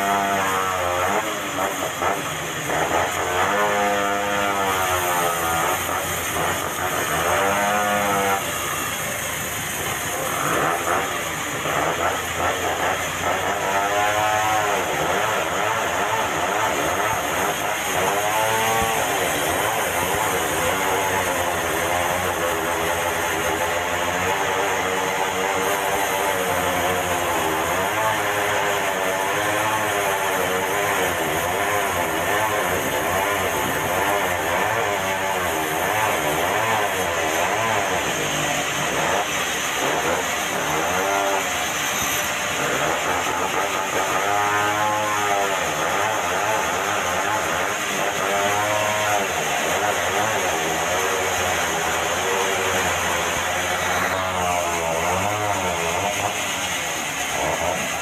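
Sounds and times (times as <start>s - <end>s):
band sawmill cutting log: 0.0s - 58.0s.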